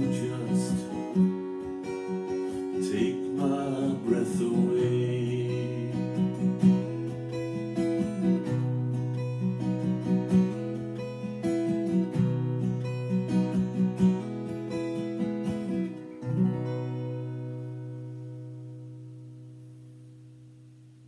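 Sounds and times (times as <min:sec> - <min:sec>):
acoustic guitar picking and strumming: 0:00.0 - 0:21.0.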